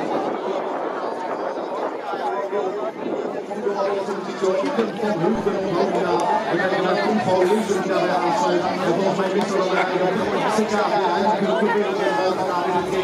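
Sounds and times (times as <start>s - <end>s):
babble of many people talking: 0.0s - 13.0s.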